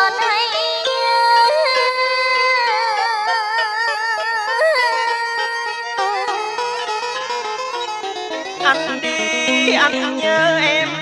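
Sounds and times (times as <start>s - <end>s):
instrumental accompaniment: 0.0s - 11.0s.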